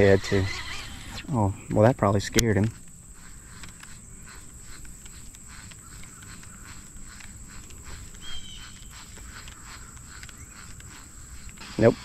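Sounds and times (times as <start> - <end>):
fishing reel ticking and rustling: 0.0 - 1.2, 2.1 - 12.0.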